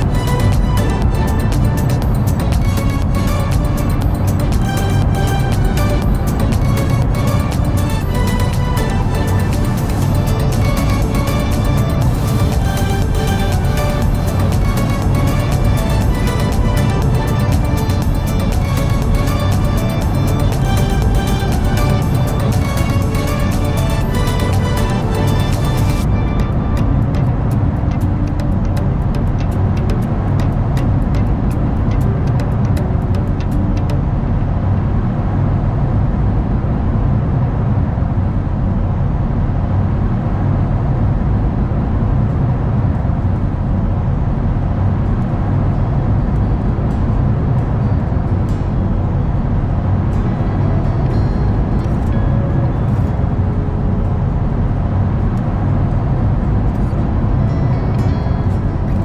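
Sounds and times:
faint background music: 0.0s - 59.0s
road and tyre noise inside car: 0.0s - 59.0s.

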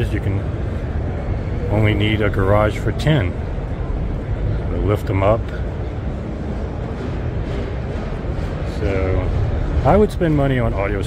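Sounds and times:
busy exhibition hall noise: 0.0s - 11.0s
low rumble: 0.0s - 11.0s.

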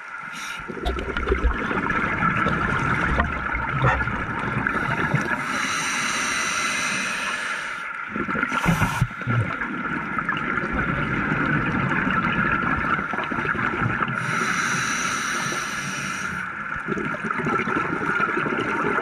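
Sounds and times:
exhaled bubbles gurgling: 0.2s - 19.0s
regulator breathing hiss: 0.3s - 0.7s, 4.8s - 7.9s, 8.6s - 9.2s, 14.2s - 16.5s.

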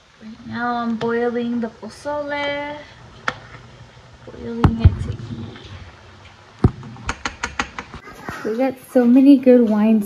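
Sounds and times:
kitchen objects clicking and knocking: 6.6s - 8.0s.

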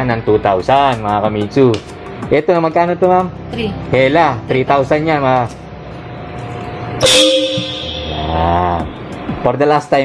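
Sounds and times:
two-tone car horn blast: 7.0s - 8.7s.

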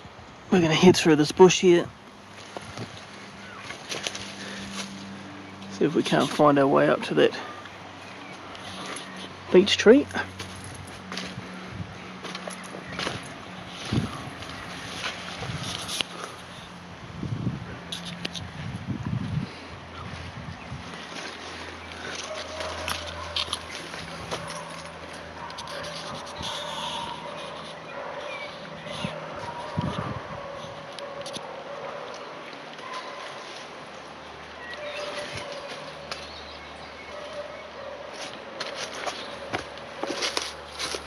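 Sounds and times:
leaves and branches rustling: 0.4s - 41.0s
footsteps in undergrowth: 2.1s - 16.8s, 20.0s - 41.0s
twigs cracking: 2.3s - 6.4s, 7.5s - 16.5s, 20.9s - 29.8s, 38.1s - 41.0s.

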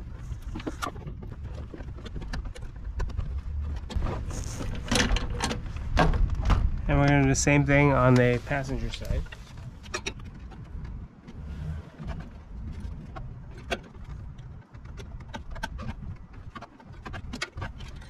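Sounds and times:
clicks and rattles of hand work: 0.0s - 7.3s, 8.1s - 11.4s, 12.0s - 18.0s
low uneven rumble: 0.0s - 14.8s.

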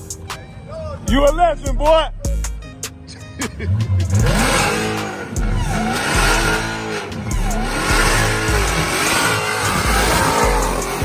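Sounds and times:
music with heavy bass beat: 0.0s - 0.4s, 1.1s - 11.0s
car engine revving: 3.4s - 11.0s
tires squealing: 3.4s - 11.0s.

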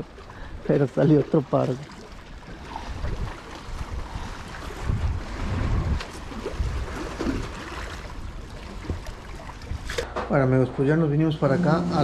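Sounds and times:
wind rumbling on microphone: 2.4s - 10.1s.

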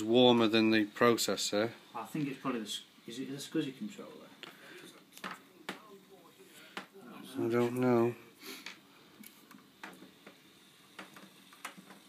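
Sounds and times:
faint handling clicks and taps: 8.6s - 12.0s.

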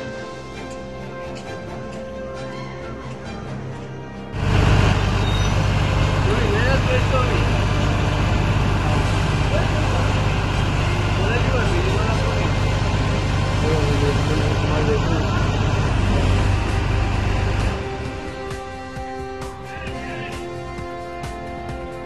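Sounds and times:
excavator diesel engine running: 4.4s - 21.9s
people calling out: 19.6s - 20.6s.

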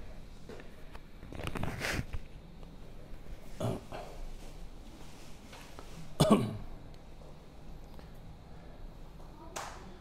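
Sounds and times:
man coughing: 6.2s - 6.7s.

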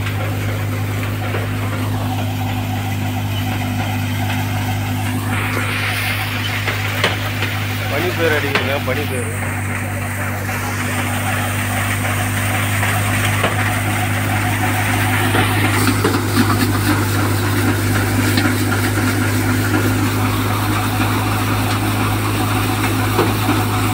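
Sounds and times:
low engine drone: 0.0s - 23.9s
thresher rattling dry plants: 0.0s - 23.9s.

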